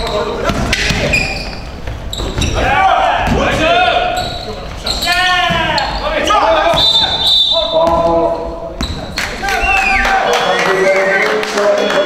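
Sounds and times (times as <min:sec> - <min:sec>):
players shouting: 0:02.4 - 0:04.2.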